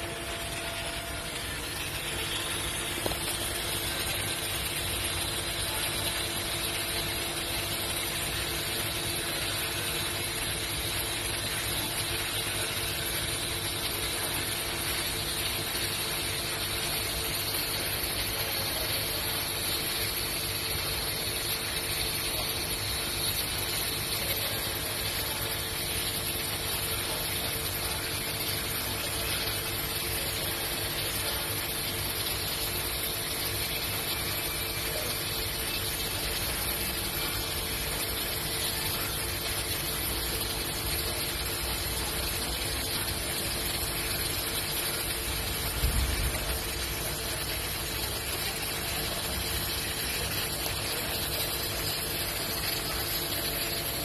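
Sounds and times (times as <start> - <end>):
welding arc hissing: 0.0 - 54.0.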